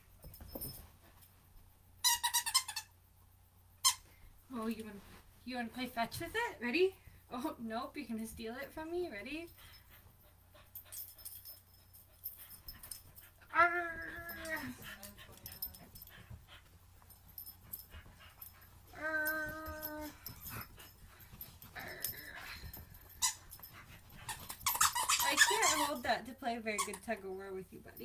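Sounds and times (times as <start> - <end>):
puppy whining: 12.5 - 16.4, 17.3 - 26.0.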